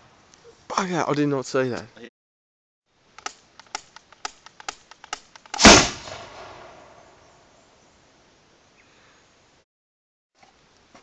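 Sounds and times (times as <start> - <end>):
spud gun bang: 5.5 - 6.8.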